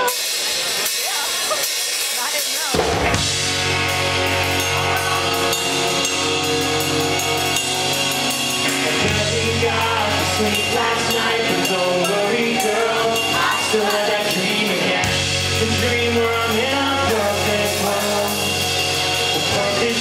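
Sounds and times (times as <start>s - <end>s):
crowd voices: 0.0s - 20.0s
live rock band playing: 0.0s - 20.0s.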